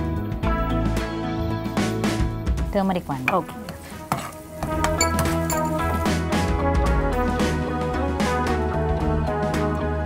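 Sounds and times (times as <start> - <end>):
background music: 0.0 - 10.0
spatula stirring in pan: 3.3 - 6.0.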